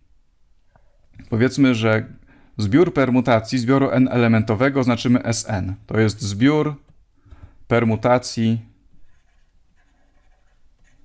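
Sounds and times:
stylus scratching on tablet: 0:09.0 - 0:11.0.

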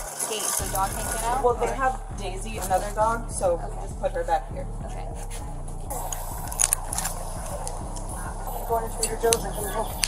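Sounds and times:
steady low background: 0:00.6 - 0:10.0.

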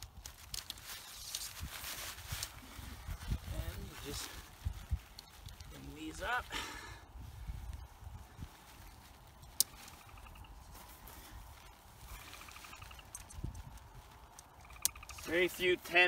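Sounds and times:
tent poles being handled: 0:00.0 - 0:16.0.

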